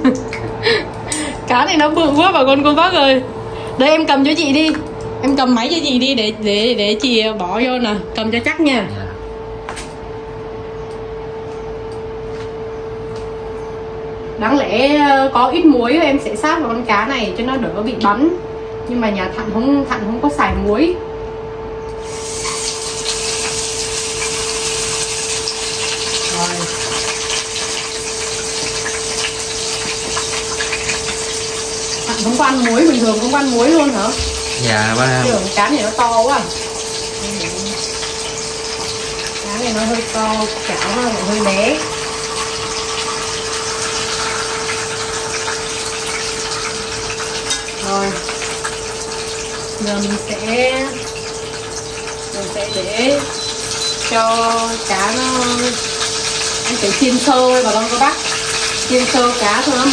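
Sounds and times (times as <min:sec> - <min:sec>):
steady hum: 0:00.0 - 0:26.7, 0:30.4 - 0:44.1
fish sizzling in hot oil: 0:22.0 - 0:59.9.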